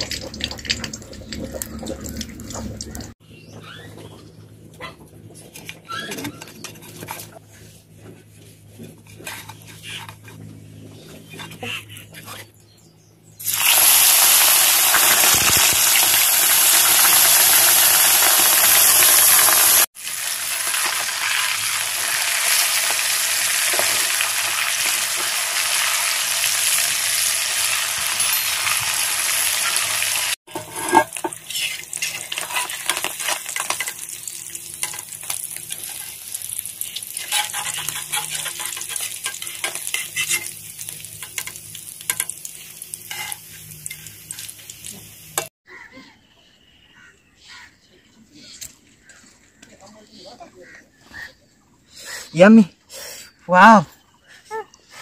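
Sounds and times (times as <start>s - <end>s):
oil crackling and popping: 0.0s - 3.2s, 13.4s - 45.5s
fish sizzling in hot oil: 13.4s - 45.5s
metal spoon clinking in pan: 43.1s - 44.1s.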